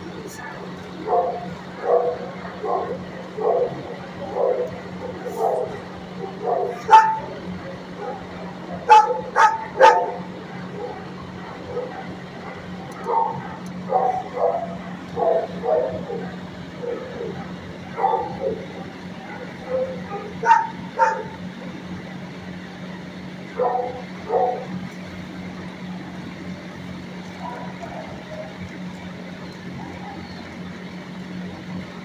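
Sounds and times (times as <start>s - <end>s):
steady low hum: 0.0s - 32.0s
dogs barking: 0.3s - 22.2s, 23.2s - 25.0s, 26.9s - 30.7s.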